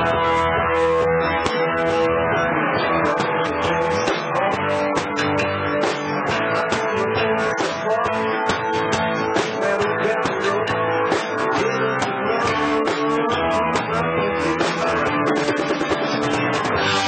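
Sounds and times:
live country band playing: 0:00.0 - 0:17.0.

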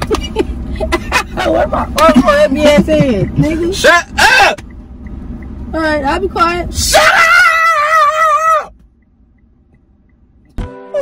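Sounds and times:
low rumble of car cabin: 0:00.0 - 0:11.0
man shouting: 0:03.8 - 0:04.6, 0:06.8 - 0:08.7.

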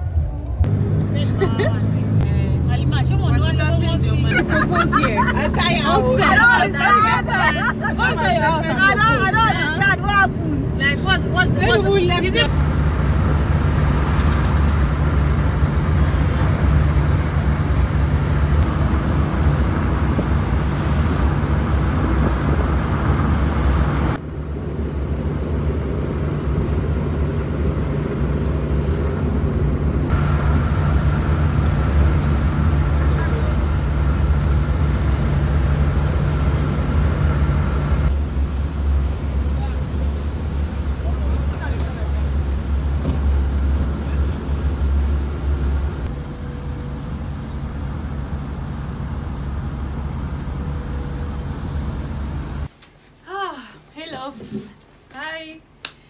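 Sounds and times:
vehicle engine and road rumble: 0:00.0 - 0:56.0.

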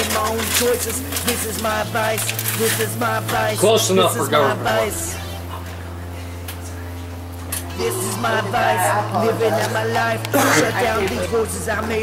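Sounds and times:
steady low hum: 0:00.0 - 0:12.0
person's voice: 0:07.8 - 0:12.0.

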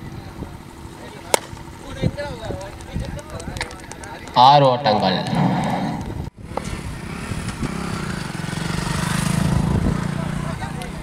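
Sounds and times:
cricket bat striking ball: 0:01.2 - 0:01.7.

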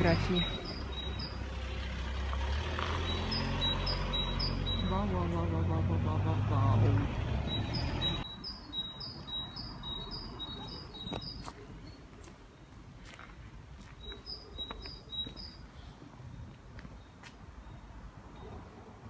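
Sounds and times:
small bird chirping: 0:00.0 - 0:01.8, 0:02.8 - 0:05.2, 0:07.4 - 0:12.7, 0:14.0 - 0:15.7
motor vehicle engine: 0:00.0 - 0:08.4.

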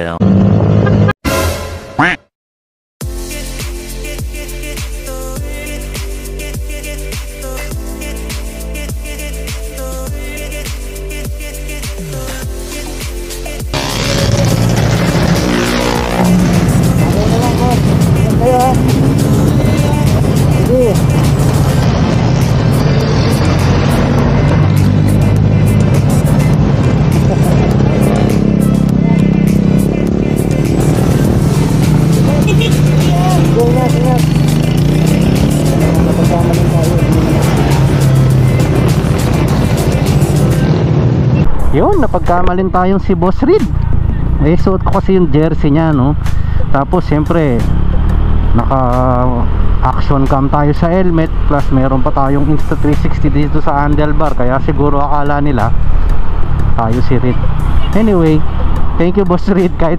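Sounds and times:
road traffic: 0:00.0 - 0:02.2, 0:03.0 - 0:59.9
background music: 0:03.0 - 0:59.9
indistinct voices: 0:13.7 - 0:40.7
motor scooter engine running: 0:26.7 - 0:40.4.

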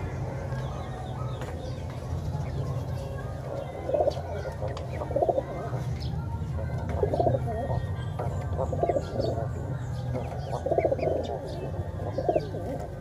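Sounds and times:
pigeons cooing: 0:02.4 - 0:13.0.

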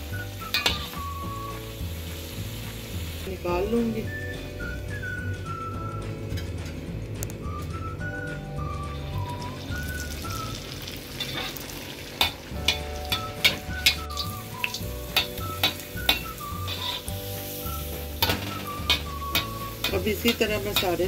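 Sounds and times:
food sizzling in hot oil: 0:00.0 - 0:05.7, 0:09.0 - 0:21.0
soft background music: 0:00.0 - 0:21.0.

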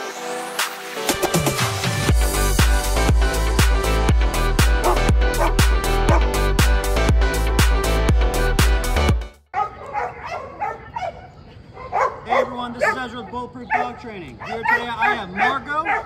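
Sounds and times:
upbeat electronic music: 0:00.0 - 0:09.5.

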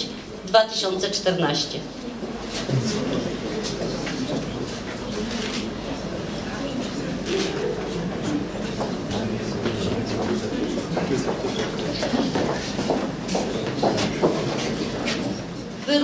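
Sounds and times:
murmur of people talking: 0:00.0 - 0:16.0.

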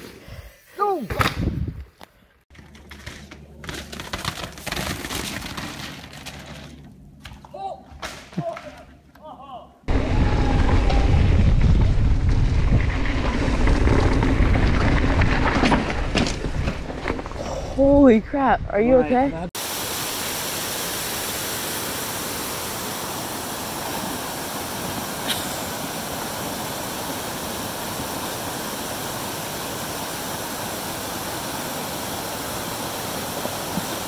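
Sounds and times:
bike tyre and trail noise: 0:00.0 - 0:09.3, 0:09.9 - 0:18.4, 0:20.6 - 0:34.0
wind buffeting microphone: 0:09.9 - 0:19.5.

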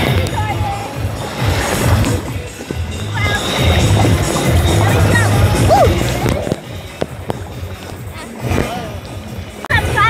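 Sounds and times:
people chattering: 0:00.0 - 0:07.1
dance music: 0:00.0 - 0:10.0.

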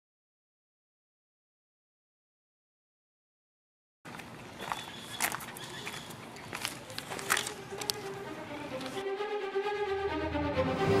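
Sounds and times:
outdoor background noise: 0:04.0 - 0:09.1.

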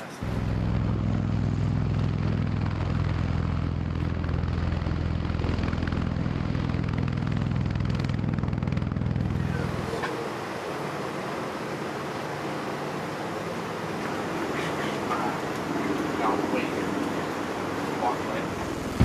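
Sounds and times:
aircraft rotors droning: 0:00.0 - 0:19.0.

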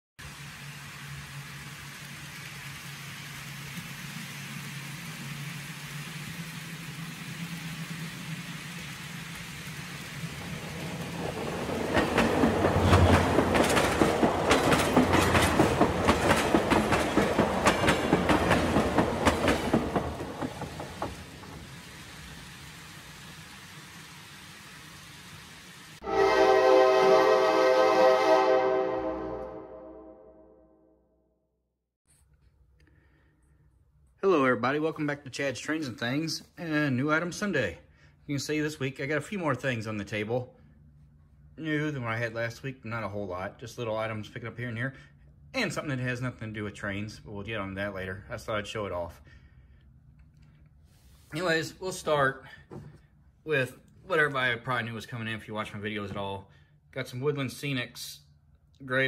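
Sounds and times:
model train motor hum: 0:00.2 - 0:26.0
train cars clattering over track: 0:09.9 - 0:21.8
horn-like tone: 0:26.0 - 0:31.0.

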